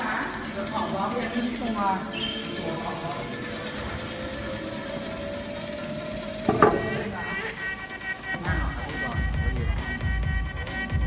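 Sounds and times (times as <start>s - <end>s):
quiet background music: 0.0s - 11.0s
wooden box knocking on floor: 6.5s - 7.0s.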